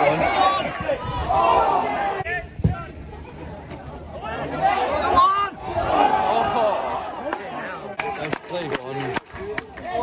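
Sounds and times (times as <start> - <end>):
football fans reacting: 0.0 - 10.0.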